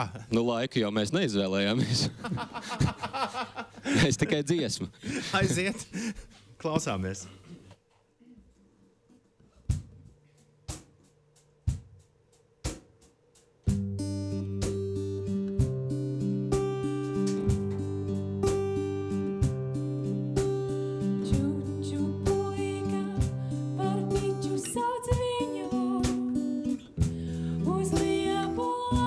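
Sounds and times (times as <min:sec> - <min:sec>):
acoustic guitar strummed chords: 0:13.7 - 0:29.0.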